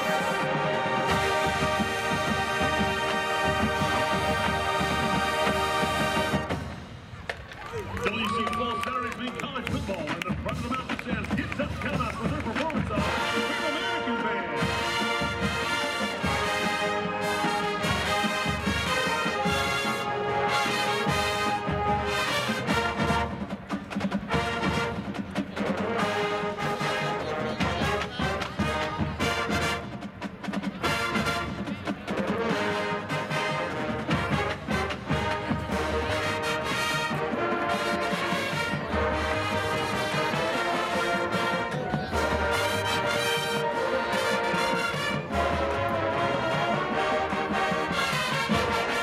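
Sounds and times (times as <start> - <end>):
brass chords: 0.0 - 6.8, 10.3 - 23.6, 24.2 - 49.0
marching band drums: 0.0 - 7.5, 8.1 - 49.0.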